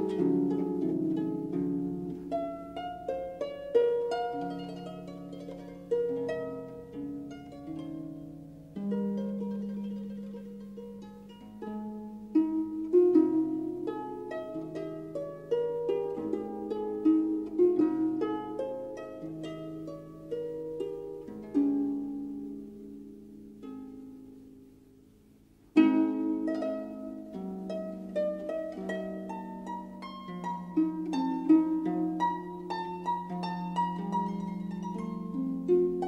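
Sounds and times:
harp playing slow piece: 0:00.0 - 0:36.0.

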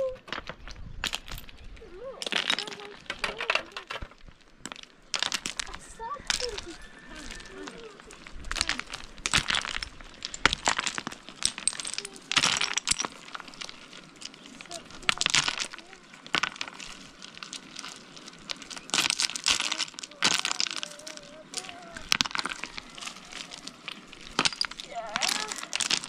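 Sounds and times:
loose stones clattering: 0:00.0 - 0:26.0.

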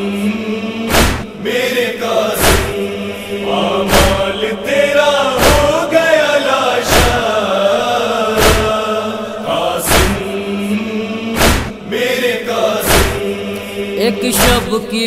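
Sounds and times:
wordless chorus chanting: 0:00.0 - 0:15.0
heavy thump: 0:00.9 - 0:01.3, 0:02.4 - 0:02.8, 0:03.9 - 0:04.3, 0:05.4 - 0:05.8, 0:06.9 - 0:07.3, 0:08.4 - 0:08.8, 0:09.8 - 0:10.3, 0:11.4 - 0:11.8, 0:12.8 - 0:13.3.

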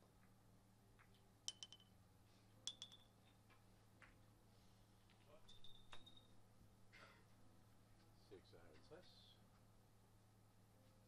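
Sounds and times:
billiard balls clicking together: 0:01.0 - 0:02.0, 0:02.7 - 0:04.2
pins knocked over: 0:01.5 - 0:02.0, 0:02.7 - 0:03.2.

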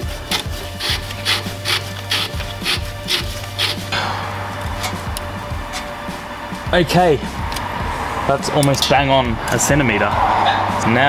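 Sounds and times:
metal threads scraping: 0:00.0 - 0:08.8.

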